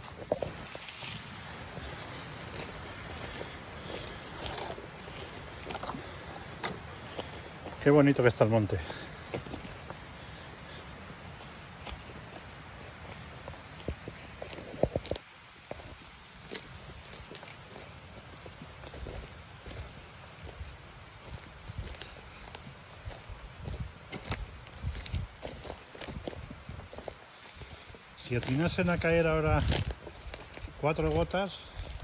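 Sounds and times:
footsteps on forest floor: 0.0 - 32.0
twigs snapping underfoot: 0.1 - 7.8, 11.8 - 20.6, 21.3 - 32.0.

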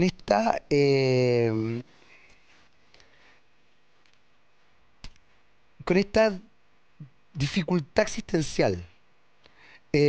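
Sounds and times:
man talking: 0.0 - 1.9, 5.8 - 6.5, 7.4 - 8.9.

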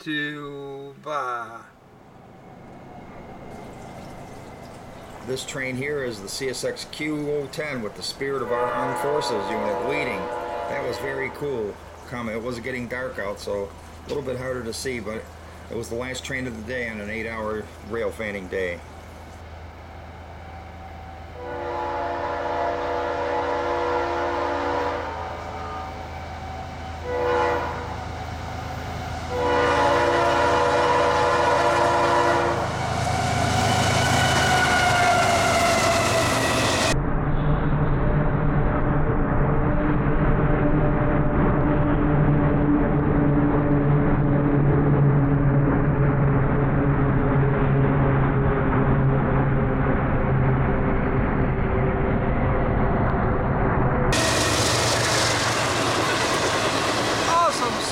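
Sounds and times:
diesel locomotives rolling past: 0.0 - 57.9
locomotive horn blasts: 8.2 - 11.8, 20.7 - 28.1, 29.2 - 36.8.

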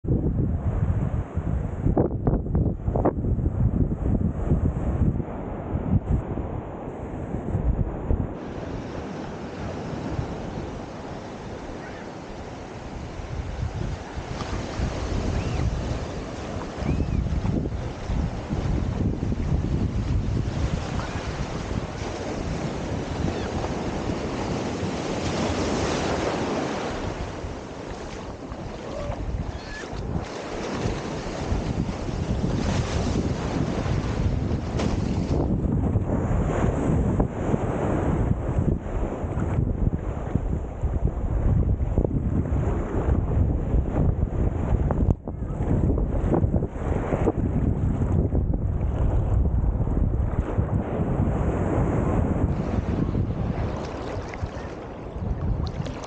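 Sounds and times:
wind buffeting microphone: 0.0 - 56.0
surf washing on shore: 0.1 - 56.0.

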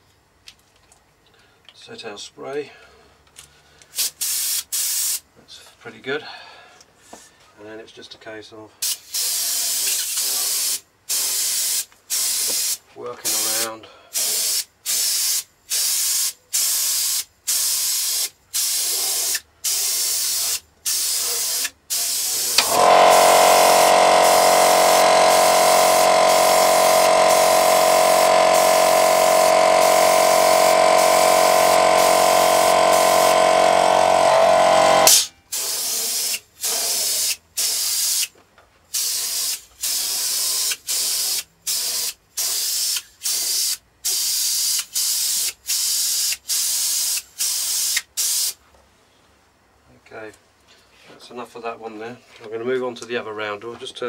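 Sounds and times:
airbrush spraying hiss: 4.0 - 5.2, 8.8 - 38.3, 38.9 - 48.6
small motor humming: 22.5 - 35.2.

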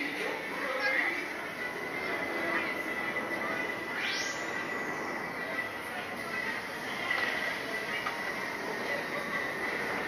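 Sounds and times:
ride machinery whining: 0.0 - 10.0.

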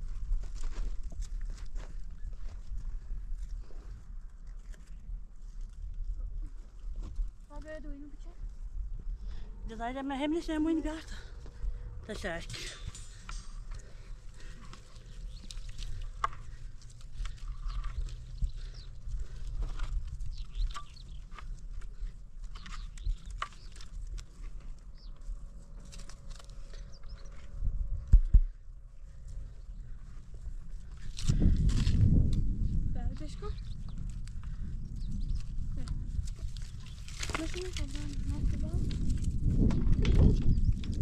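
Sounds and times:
loud low rumble: 8.6 - 15.2, 25.3 - 30.8.

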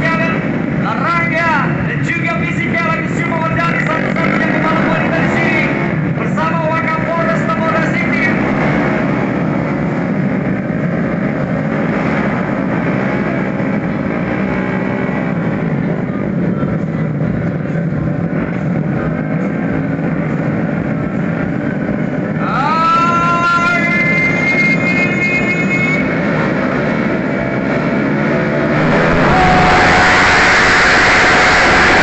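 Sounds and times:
scooter engines droning: 0.0 - 32.0.

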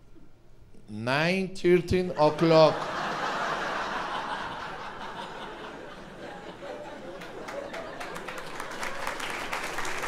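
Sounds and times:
audience laughing: 2.2 - 9.5.

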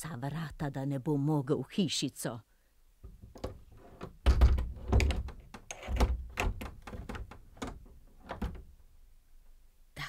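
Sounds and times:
heavy door thuds: 3.0 - 8.8
latch and bolt clicks: 3.1 - 8.7.

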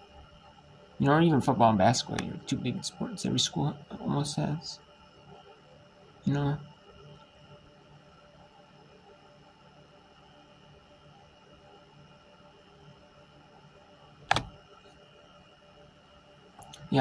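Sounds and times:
faint high whine: 0.0 - 17.0
sharp click: 14.3 - 14.5.

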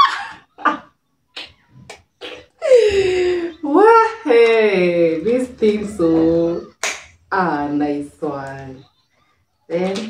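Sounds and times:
person laughing: 2.5 - 3.8.

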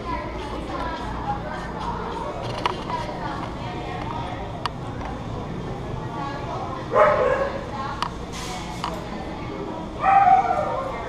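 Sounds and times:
dog barking: 6.9 - 7.6, 10.0 - 11.0.

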